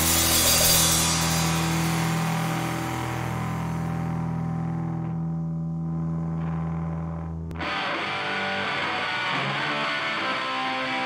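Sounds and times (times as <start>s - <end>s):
cymbals washing: 0.0s - 4.4s
distorted electric guitar chord: 0.0s - 11.0s.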